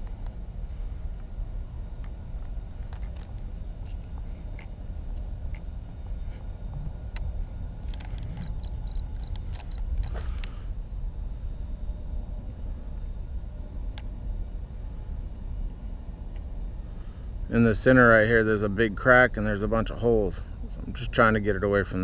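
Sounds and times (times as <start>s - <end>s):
steady low rumble: 0.0s - 22.0s
scattered clicks: 7.8s - 10.5s
short high-pitched electronic beeps: 8.4s - 9.8s.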